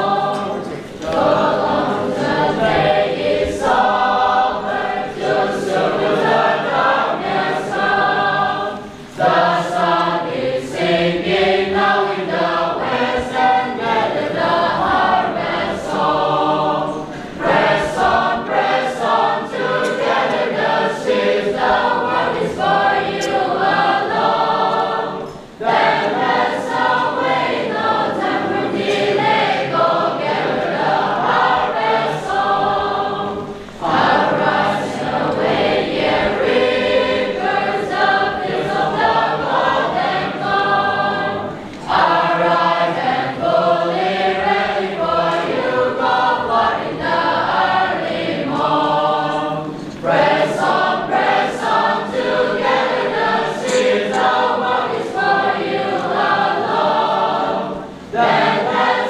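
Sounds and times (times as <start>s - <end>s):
church choir singing a hymn: 0.0s - 59.0s.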